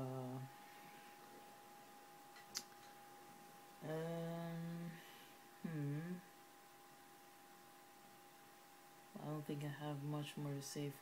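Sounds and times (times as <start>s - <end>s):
person humming: 0.0s - 0.5s, 3.8s - 6.3s.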